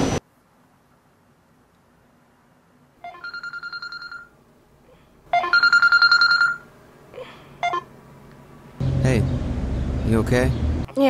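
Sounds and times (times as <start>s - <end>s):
electronic telephone ringing: 3.0s - 4.4s, 5.3s - 6.7s, 7.6s - 7.9s.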